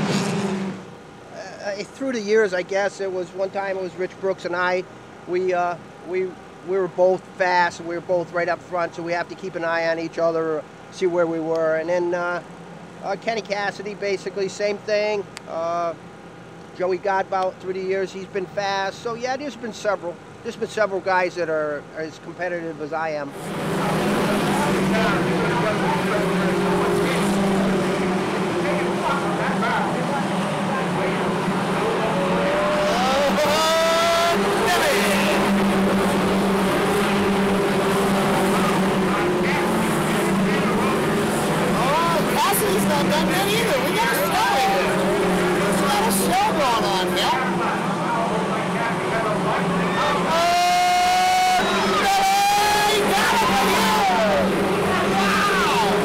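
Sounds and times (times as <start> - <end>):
race car engines droning: 0.0 - 56.0.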